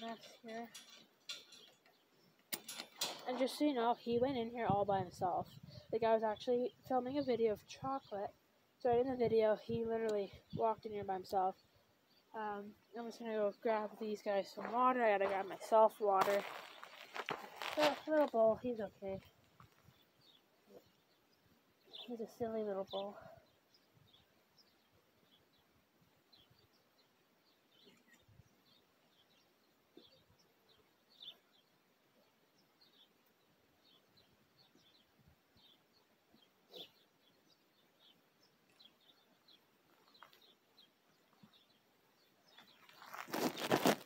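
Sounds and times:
bird chirps: 26.3s - 43.7s.

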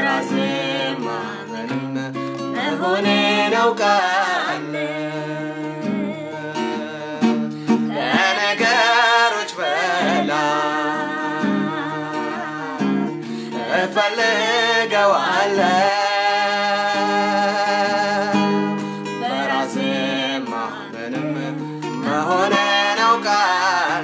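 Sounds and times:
acoustic guitar strumming: 0.0s - 24.0s
person singing: 0.0s - 24.0s.

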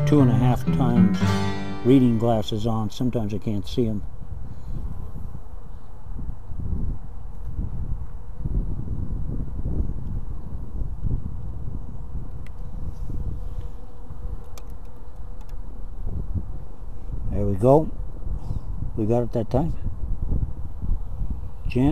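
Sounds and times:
faint ticks: 14.4s - 15.6s.

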